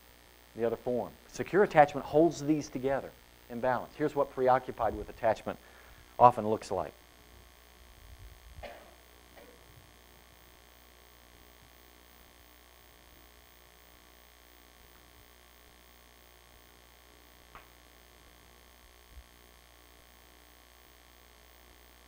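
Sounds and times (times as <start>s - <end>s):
faint low hum: 0.0s - 22.0s.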